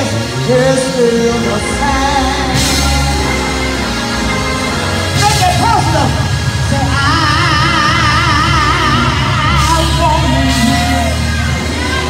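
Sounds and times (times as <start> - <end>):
woman singing with vibrato: 0.0 - 4.7, 6.6 - 12.0
live band with steady bass: 0.0 - 12.0.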